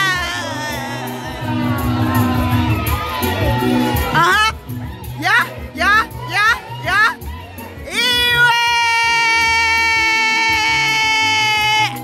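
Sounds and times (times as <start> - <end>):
live band music: 0.0 - 12.0
steady bass line: 0.0 - 12.0.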